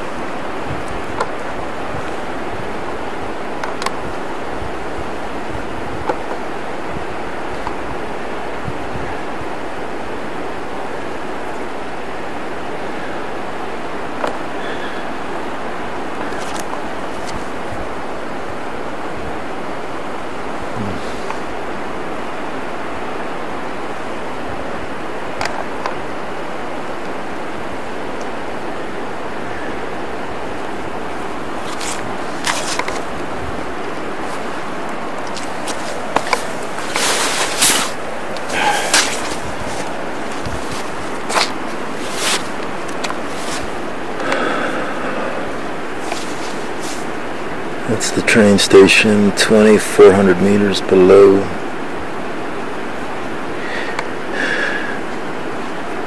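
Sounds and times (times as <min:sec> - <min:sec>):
rain hissing: 0:00.0 - 0:56.0
raindrops tapping near microphone: 0:11.0 - 0:48.7.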